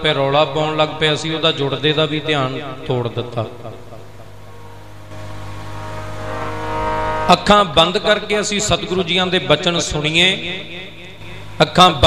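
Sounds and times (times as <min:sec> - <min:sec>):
harmonium chord: 0:04.2 - 0:12.0.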